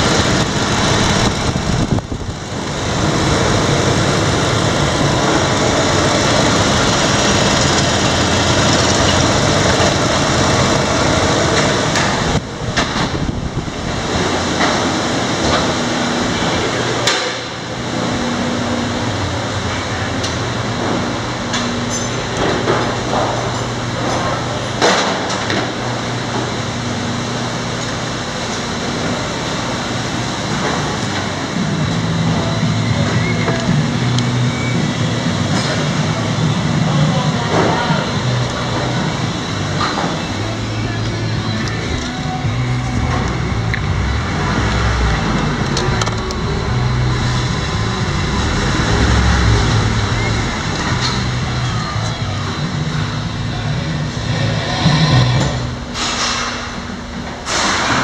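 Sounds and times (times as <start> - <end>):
truck engine idling: 0.0 - 57.9.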